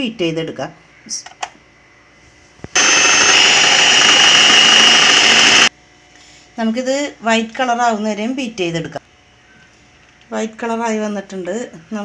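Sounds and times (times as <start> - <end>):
kitchen mixer motor whining: 2.8 - 5.7.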